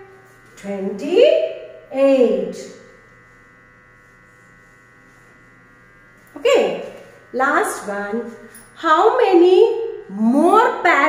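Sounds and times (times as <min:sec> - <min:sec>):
faint electrical hum: 0:00.0 - 0:11.0
thin high whine: 0:00.0 - 0:11.0.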